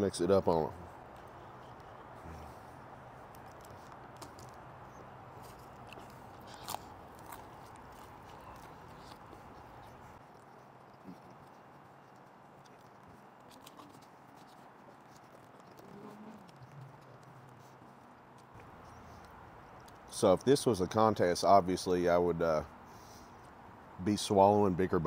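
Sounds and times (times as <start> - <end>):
low background noise: 0.0 - 25.0
biting and chewing food: 0.2 - 24.0
mouth clicks: 1.1 - 20.1.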